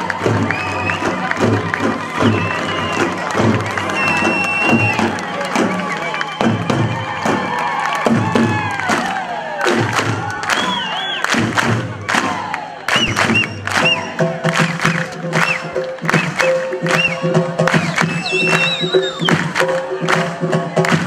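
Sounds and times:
crowd cheering and shouting: 0.0s - 21.0s
short high whistles: 4.0s - 5.0s, 17.8s - 19.3s.

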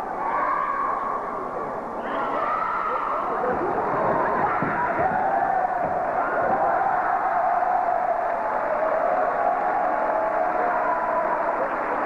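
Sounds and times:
arena crowd cheering and shouting: 0.0s - 12.0s.

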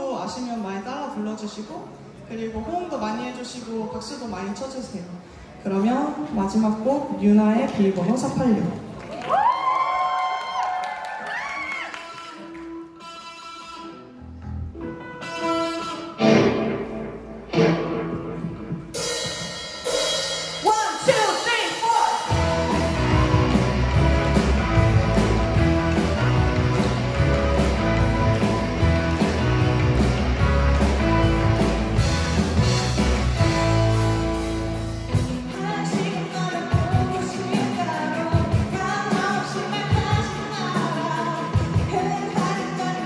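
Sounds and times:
live rock band playing: 11.9s - 43.0s
sustained guitar chords: 12.4s - 20.5s, 22.3s - 35.8s
drums and bass beat: 18.0s - 43.0s.

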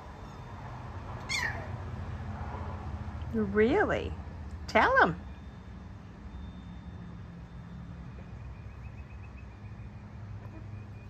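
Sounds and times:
puppy crying: 1.2s - 1.8s.

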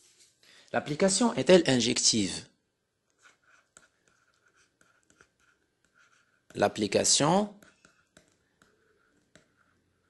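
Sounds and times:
stylus scratching on tablet: 3.0s - 10.0s.

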